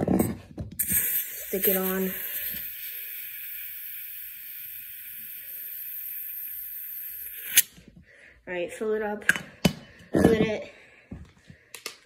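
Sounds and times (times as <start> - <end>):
gas hissing from can: 0.8 - 7.7
sharp valve click: 0.8 - 7.7.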